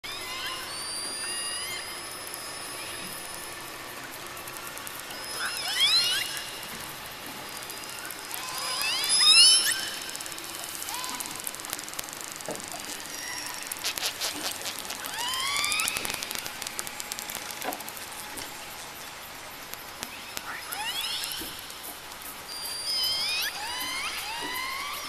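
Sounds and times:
killer whale whistles: 0.1 - 3.1, 5.2 - 6.6, 8.3 - 10.2, 22.5 - 25.0.

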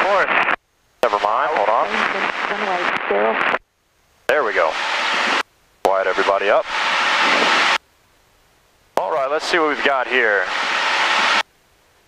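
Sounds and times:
aircraft engine and cabin noise: 1.1 - 3.1, 4.5 - 7.8, 9.1 - 11.4.

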